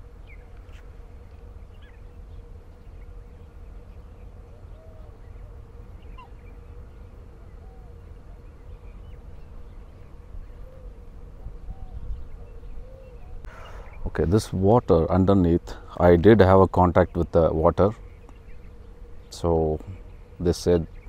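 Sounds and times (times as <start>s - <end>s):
faint bird chirps: 0.0s - 14.4s
low hum: 0.0s - 21.0s.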